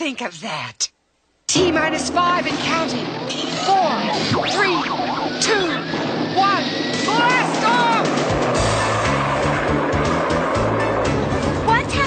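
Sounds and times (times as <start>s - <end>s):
cartoon rocket roar: 3.3s - 12.0s
music with bass line: 8.1s - 12.0s.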